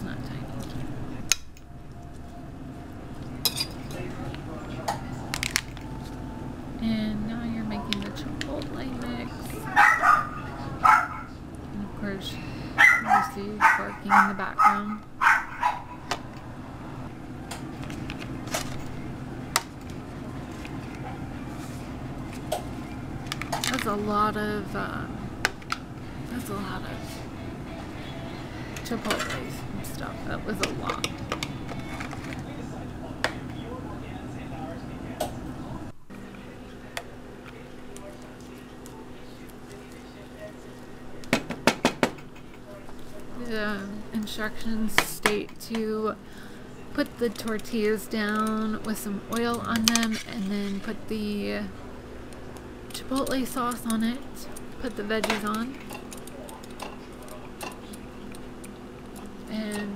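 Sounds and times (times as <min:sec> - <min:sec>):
low hum: 0:00.0 - 0:41.2.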